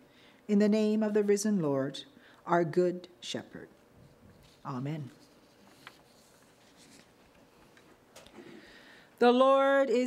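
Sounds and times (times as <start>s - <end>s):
paper rustling: 4.0s - 7.8s.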